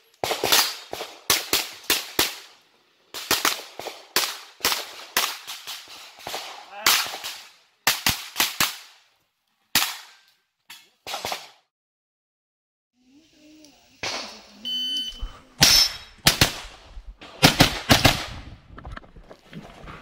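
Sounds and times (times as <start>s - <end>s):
carbine firing rapid shots: 16.2s - 18.4s.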